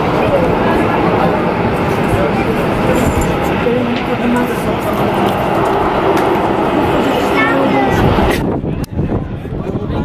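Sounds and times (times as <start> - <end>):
indistinct voices: 0.0 - 10.0
jet engines running: 0.0 - 10.0.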